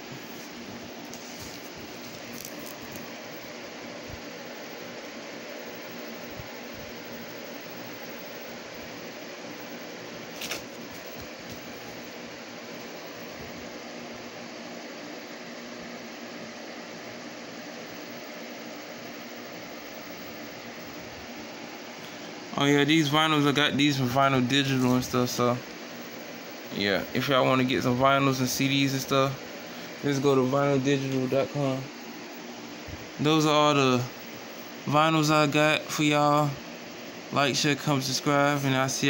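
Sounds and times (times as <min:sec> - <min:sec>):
room hiss: 0:00.0 - 0:39.0.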